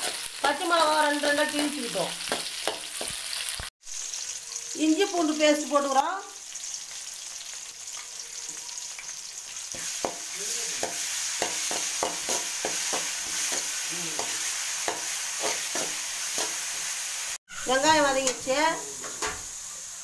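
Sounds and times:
vegetables sizzling in hot oil: 0.0s - 20.0s
steel spoon scraping pan: 9.7s - 16.8s.

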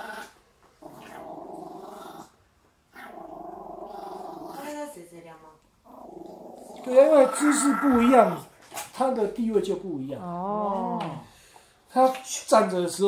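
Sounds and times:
small dog growling: 0.0s - 4.9s, 5.8s - 8.5s.

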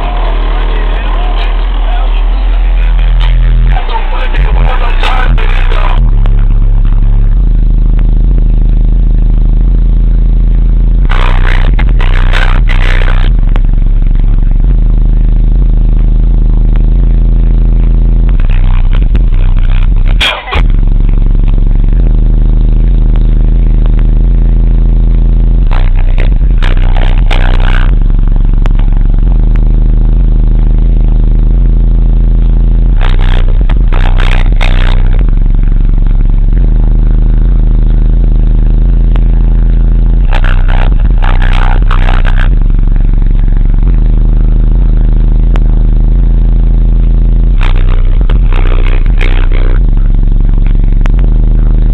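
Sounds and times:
bass-heavy music from subwoofer: 0.0s - 51.9s
bursts of higher noise: 0.0s - 51.9s.

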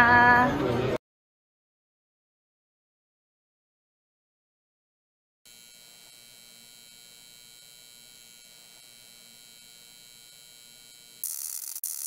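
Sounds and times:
electrical hum with high whine: 5.5s - 12.0s.

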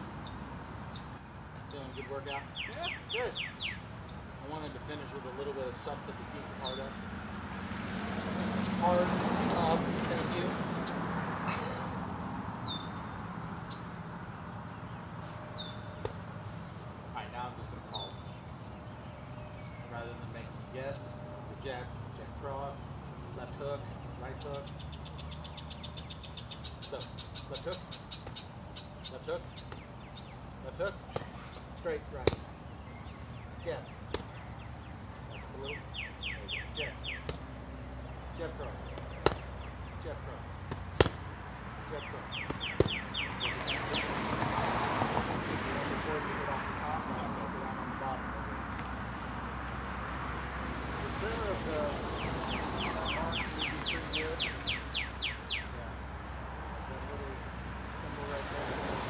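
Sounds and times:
vehicle passing: 0.0s - 59.0s
punches on a focus mitt: 31.1s - 32.6s, 34.1s - 34.4s, 37.2s - 37.5s, 38.9s - 39.6s, 40.6s - 41.3s, 42.4s - 43.1s.

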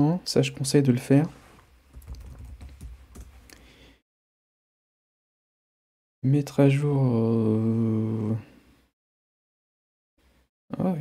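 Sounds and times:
computer keyboard typing: 2.0s - 3.4s.

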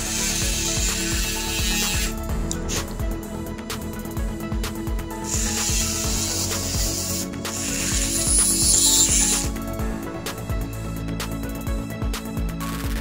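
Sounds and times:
rotary tool grinding metal: 0.0s - 2.8s, 5.2s - 9.6s
background music with steady beat: 0.0s - 13.0s.

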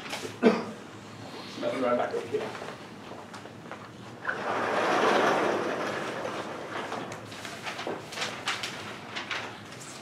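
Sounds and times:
sliding blackboard rumbling: 4.2s - 7.9s.

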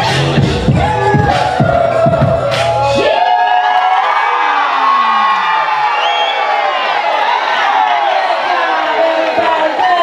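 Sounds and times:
line-dance music with strong beat: 0.0s - 3.4s
crowd cheering and whooping: 0.0s - 10.0s.

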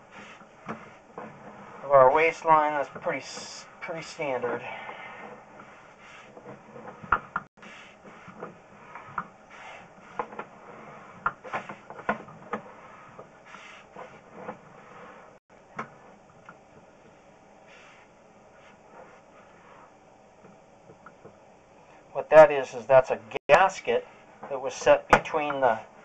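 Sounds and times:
cable rubbing in pipe: 0.0s - 15.4s, 17.7s - 20.0s.

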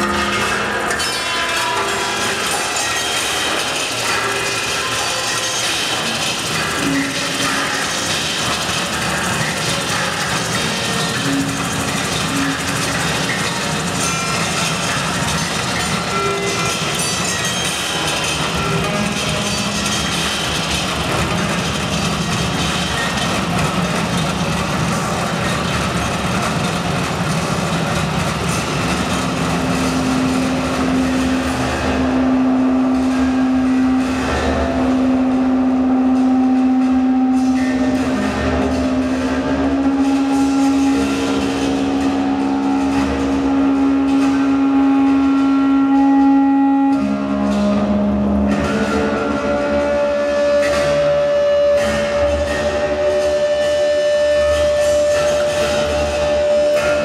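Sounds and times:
noisy mechanical texture: 0.0s - 57.0s
steady low drone: 0.0s - 57.0s
higher held tones: 28.7s - 57.0s.

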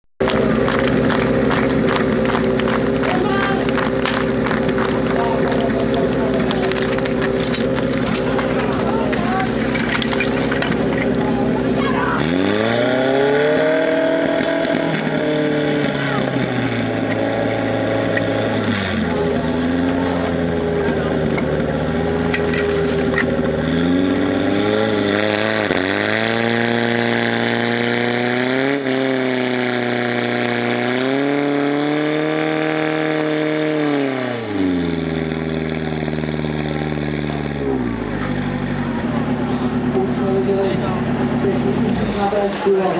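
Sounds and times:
pump engine running hard: 0.2s - 42.9s.

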